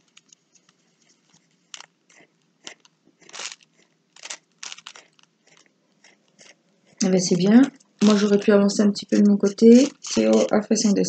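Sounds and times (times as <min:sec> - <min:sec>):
pencil scratching on paper: 0:05.4 - 0:11.0.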